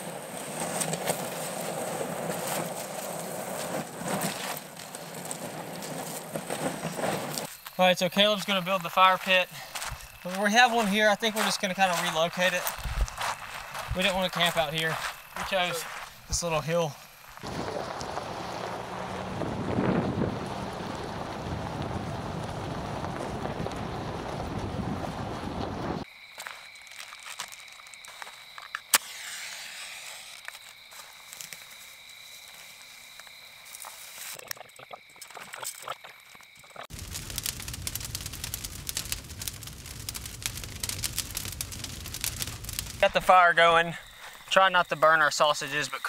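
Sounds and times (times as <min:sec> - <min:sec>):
campfire crackling: 0:00.0 - 0:29.6, 0:30.2 - 0:46.0
wind buffeting microphone: 0:12.6 - 0:14.2, 0:17.4 - 0:26.0, 0:36.9 - 0:43.1.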